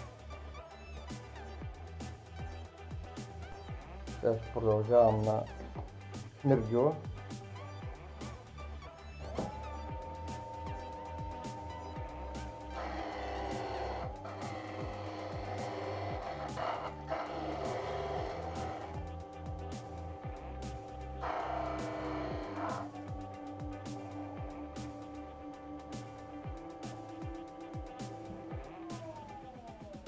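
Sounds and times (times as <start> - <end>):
background music with steady beat: 0.0 - 30.0
bench saw humming: 9.2 - 29.8
saw cutting wood: 9.3 - 29.5.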